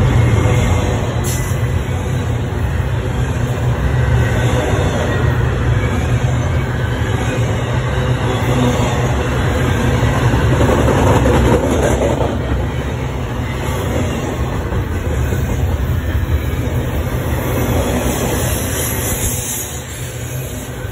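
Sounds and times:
freight train passing: 0.0s - 20.9s.

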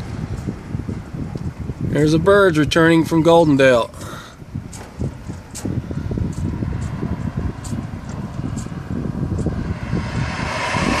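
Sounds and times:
wind buffeting microphone: 0.0s - 11.0s
rushing sound: 5.7s - 11.0s.

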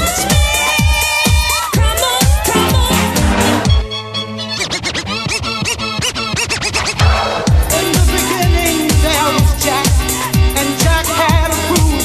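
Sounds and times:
hip house dance track: 0.0s - 3.8s, 4.6s - 12.0s
record scratching: 4.5s - 9.8s.

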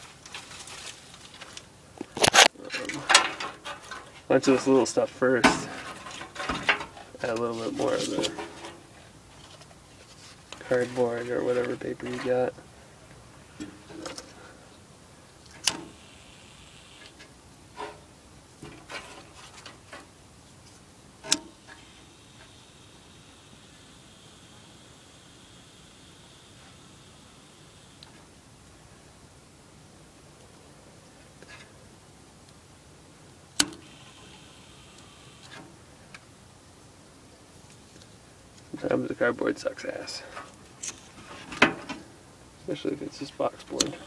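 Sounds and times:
kindling and cardboard handled: 0.0s - 12.6s
metal clank on wood stove: 5.4s - 7.0s.

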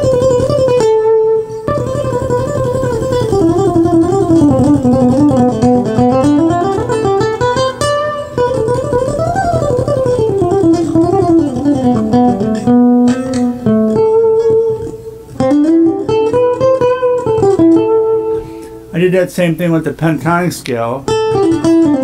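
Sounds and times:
acoustic guitar picked runs: 0.0s - 22.0s.

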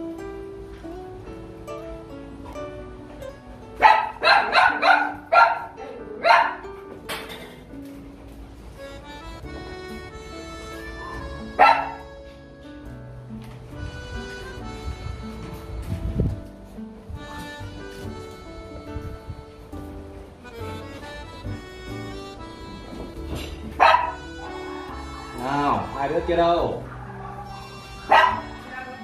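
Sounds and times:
background music: 0.0s - 29.0s
dog barking: 3.8s - 6.7s, 11.6s - 12.0s, 23.8s - 24.8s, 26.8s - 29.0s.

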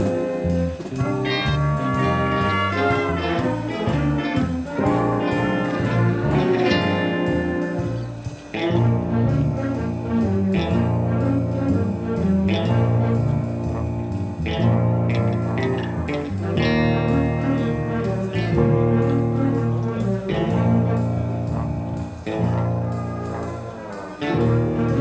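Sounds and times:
drum kit: 0.0s - 25.0s
electric guitar: 0.0s - 25.0s
keyboard: 0.0s - 25.0s
saxophones and trumpet: 0.0s - 25.0s.

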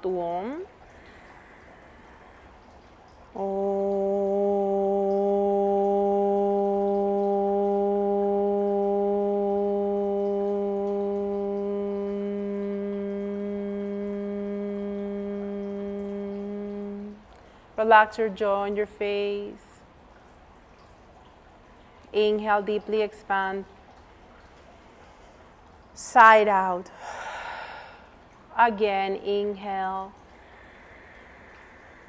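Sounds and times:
quiet in-breath: 0.9s - 2.9s, 26.9s - 28.3s, 30.3s - 32.0s
woman chanting: 3.3s - 19.8s, 28.6s - 30.2s.

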